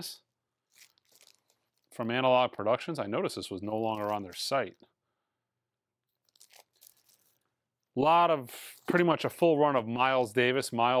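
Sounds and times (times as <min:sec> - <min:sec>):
plastic sleeve crinkling: 0:00.6 - 0:02.0, 0:03.8 - 0:04.7, 0:06.1 - 0:07.6, 0:08.5 - 0:09.3.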